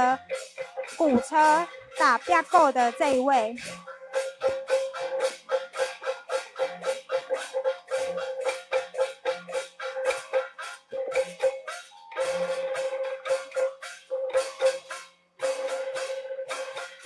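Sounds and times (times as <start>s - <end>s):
percussion band playing: 0.0s - 17.0s.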